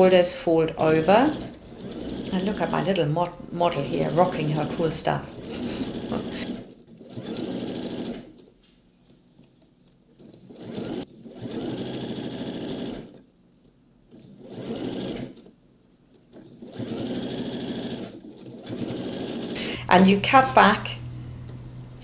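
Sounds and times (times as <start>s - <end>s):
sewing machine stitching: 0.0s - 8.6s, 10.0s - 13.4s, 14.1s - 19.8s.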